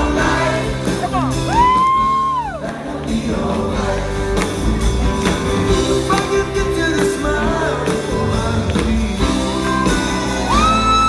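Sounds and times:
live rock band with vocals: 0:00.0 - 0:11.0.

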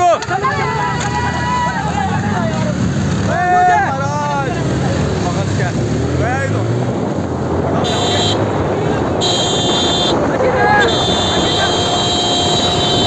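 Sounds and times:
men shouting: 0:00.0 - 0:04.8, 0:09.5 - 0:12.5
motorcycle engines running: 0:00.0 - 0:13.0.

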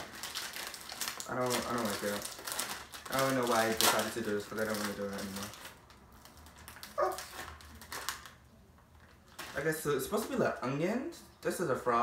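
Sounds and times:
plastic snack bag crinkling: 0:00.0 - 0:10.6.

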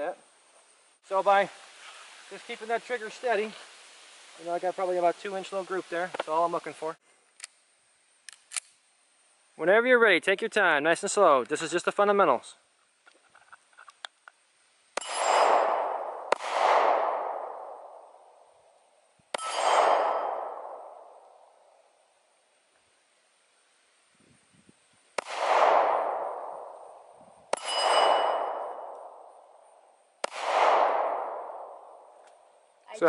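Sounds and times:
pistol shots: 0:15.0 - 0:18.0, 0:19.3 - 0:21.2, 0:25.2 - 0:26.8, 0:27.5 - 0:29.2, 0:30.2 - 0:31.9.

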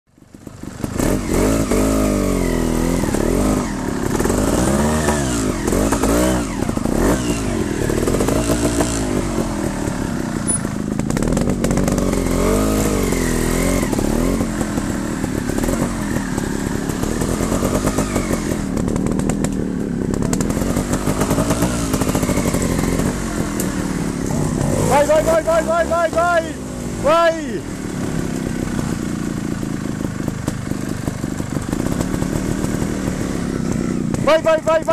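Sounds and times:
motorcycle engine revving: 0:00.1 - 0:34.9.

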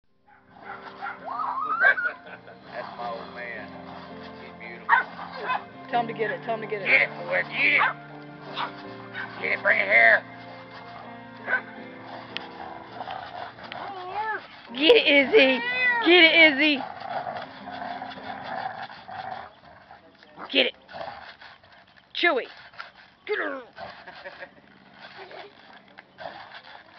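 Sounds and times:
background music: 0:00.2 - 0:19.8
dogs barking: 0:00.3 - 0:20.7.

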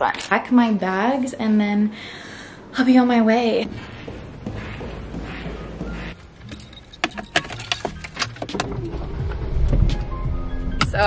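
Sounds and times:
keys jangling: 0:06.2 - 0:08.6.

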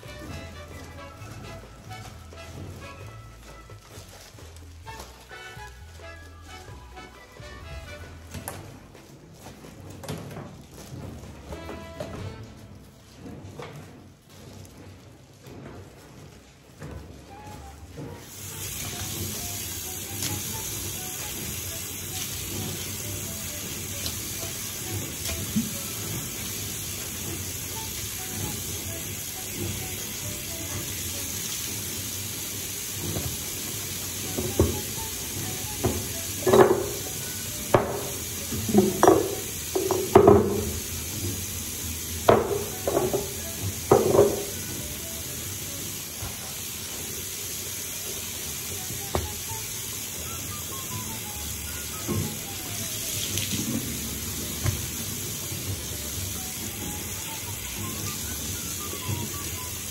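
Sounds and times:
knocks and clatters of items: 0:00.0 - 0:31.9, 0:33.0 - 0:41.5, 0:42.2 - 0:44.8
tap water running into washbasin: 0:17.3 - 0:59.9.

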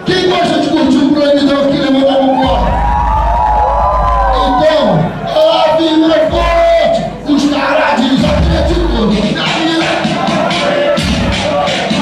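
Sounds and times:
heavy bass: 0:02.3 - 0:12.0.

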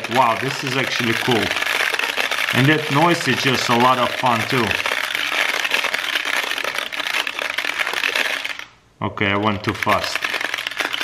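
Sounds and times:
beads clicking in spinning toy: 0:00.0 - 0:08.8, 0:09.5 - 0:11.0.

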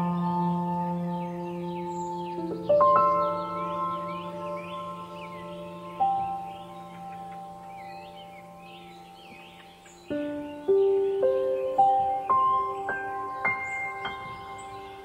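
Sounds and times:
birdsong chirps: 0:00.0 - 0:15.0
meditative ambient music: 0:00.0 - 0:15.0.

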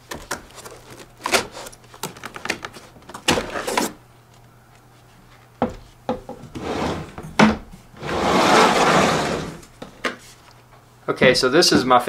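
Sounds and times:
rubbing scrape: 0:08.0 - 0:09.6.

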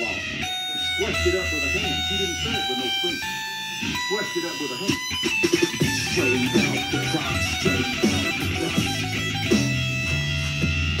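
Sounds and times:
electric guitar chords ringing: 0:00.0 - 0:11.0.

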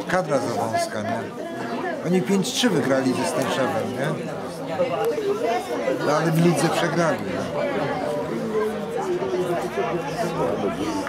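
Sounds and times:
background chatter: 0:00.0 - 0:11.0
spectators talking: 0:00.0 - 0:11.0.

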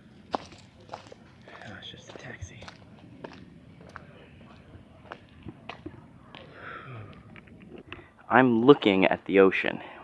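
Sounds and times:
footsteps on a path: 0:00.0 - 0:08.1.

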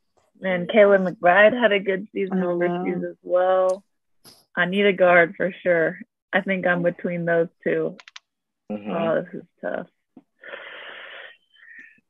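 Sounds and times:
person sighing: 0:08.7 - 0:09.1.

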